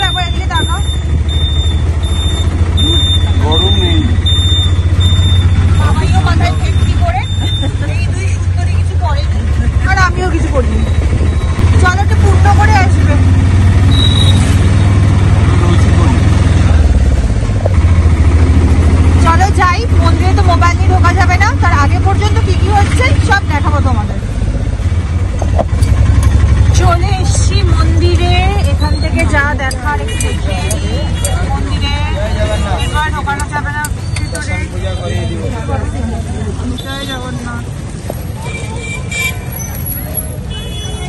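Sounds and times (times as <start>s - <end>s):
auto-rickshaw engine droning: 0.0s - 41.0s.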